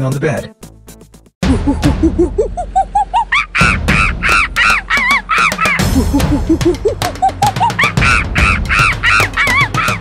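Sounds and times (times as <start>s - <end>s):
cartoon monkey hoots and screeches: 2.8s - 10.0s
backing music: 3.6s - 10.0s.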